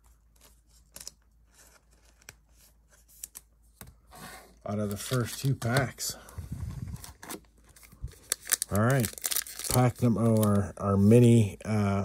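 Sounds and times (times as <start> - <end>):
foil wrapper crinkling: 7.0 - 10.7.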